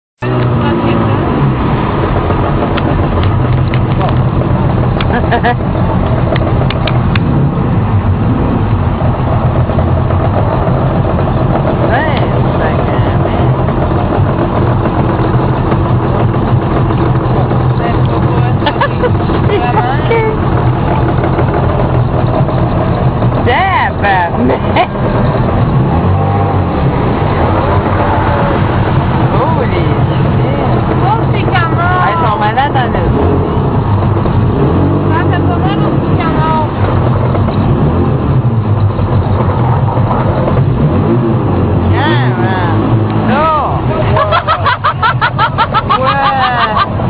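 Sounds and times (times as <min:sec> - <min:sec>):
road noise: 0:00.2 - 0:47.0
vehicle engine hum: 0:00.2 - 0:47.0.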